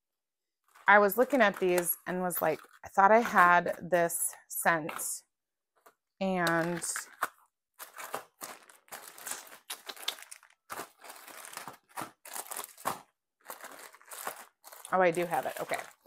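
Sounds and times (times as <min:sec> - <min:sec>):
plastic packaging crinkling: 0:06.4 - 0:16.0.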